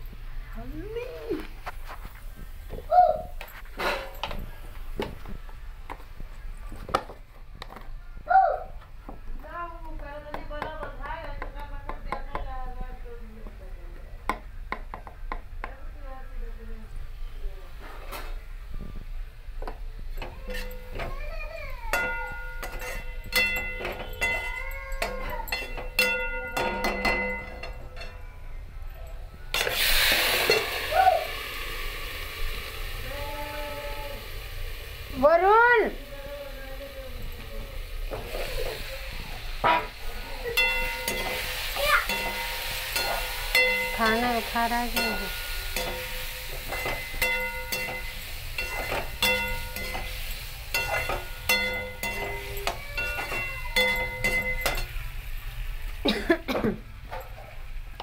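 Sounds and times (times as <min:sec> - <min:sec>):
metal spoon clinking and scraping: 0:20.2 - 0:21.1, 0:21.9 - 0:28.2, 0:40.4 - 0:55.0
loud sizzle of tomatoes in oil: 0:29.5 - 0:58.0
potatoes frying in oil: 0:29.6 - 0:56.4.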